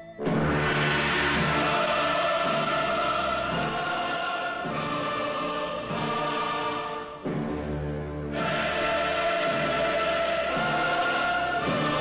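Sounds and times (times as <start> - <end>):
choir singing held chords: 0.0 - 12.0
orchestral backing: 0.0 - 12.0.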